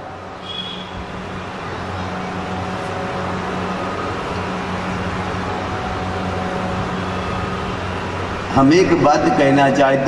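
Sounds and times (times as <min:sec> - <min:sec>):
low hum: 0:00.0 - 0:09.6.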